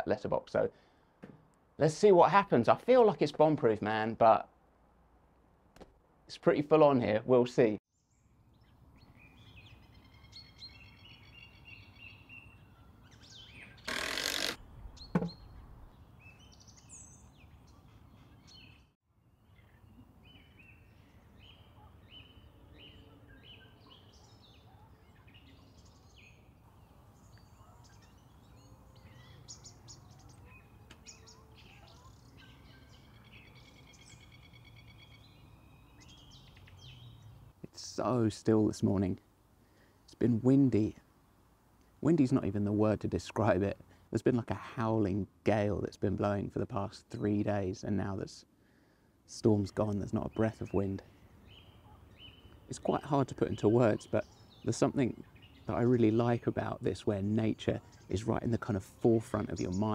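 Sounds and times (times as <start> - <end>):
small birds chirping: 7.9 - 38.2, 49.3 - 59.9
thud: 15.1 - 15.6.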